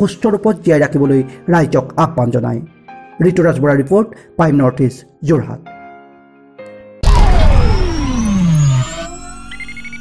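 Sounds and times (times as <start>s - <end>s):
deep synth tone gliding downward: 7.0s - 10.0s.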